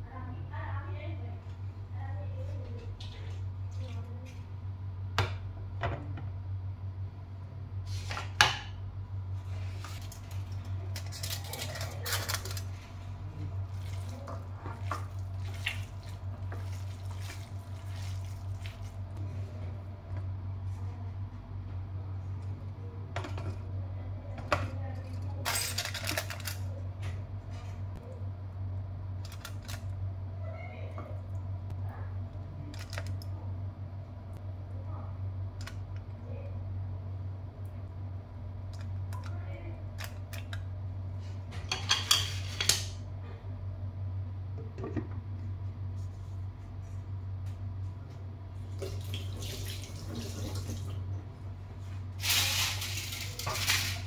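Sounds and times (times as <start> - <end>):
steady low hum: 0.0 - 54.0
aluminium foil crinkling: 9.7 - 13.0, 25.4 - 26.8, 52.2 - 54.0.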